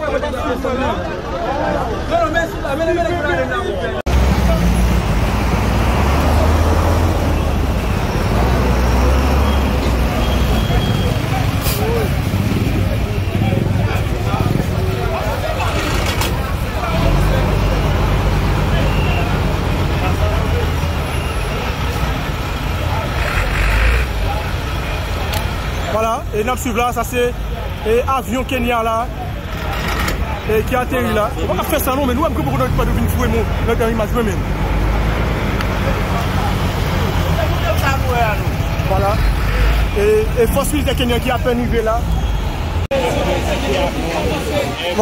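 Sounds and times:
faint voices: 0.0s - 45.0s
truck road rumble: 3.4s - 45.0s.

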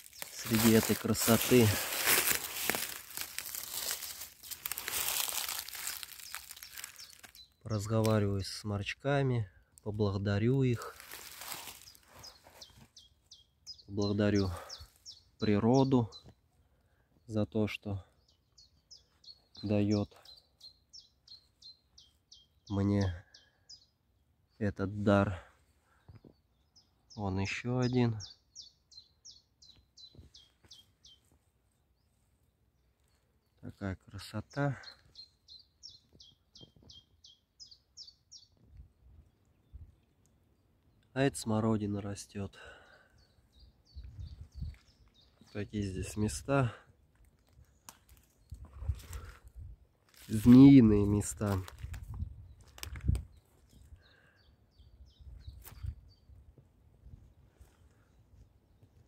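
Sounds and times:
dry leaves and clothing rustling: 0.0s - 7.6s, 10.7s - 13.0s, 47.0s - 53.7s
songbird singing: 0.0s - 59.0s.

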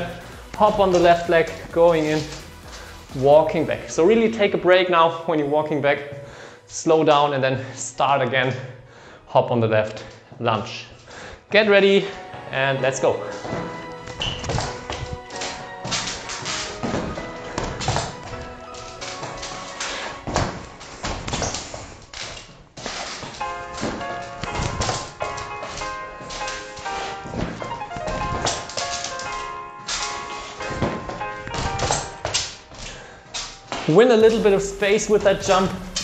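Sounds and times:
background music with steady beat: 0.0s - 36.0s
shoes landing on wooden floor: 13.3s - 33.9s.

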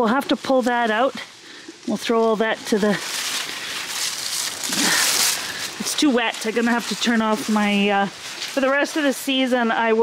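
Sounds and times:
dry leaves rustling and crackling: 0.0s - 10.0s.

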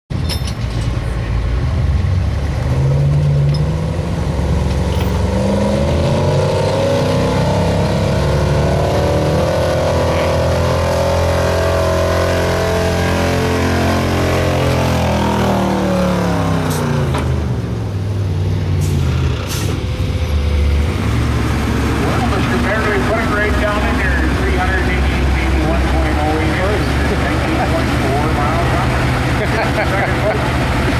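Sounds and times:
truck engine revving under load: 0.9s - 30.9s.

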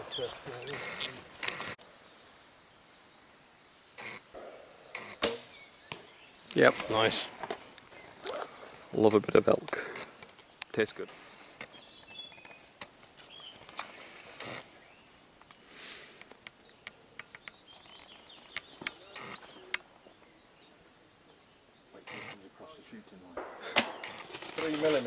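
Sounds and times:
rustles and clicks: 0.0s - 1.8s, 23.8s - 25.0s
bird chirping: 0.0s - 25.0s
sharp knock: 5.2s - 6.0s.

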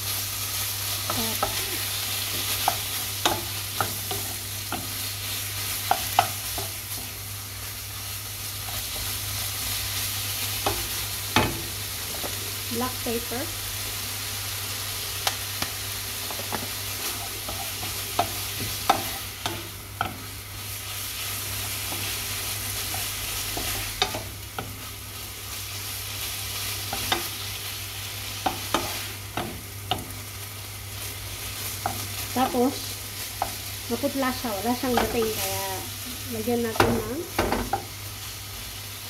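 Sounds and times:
meat sizzling in a frying pan: 0.0s - 39.0s
wooden spoon scraping a pan: 16.3s - 24.9s.

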